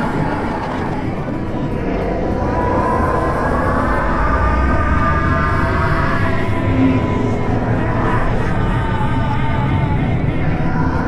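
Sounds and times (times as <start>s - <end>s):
droning electronic noise: 0.0s - 11.0s.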